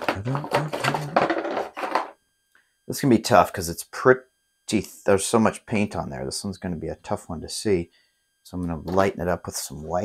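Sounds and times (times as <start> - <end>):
man talking: 0.0 - 1.4, 2.9 - 7.9, 8.5 - 10.0.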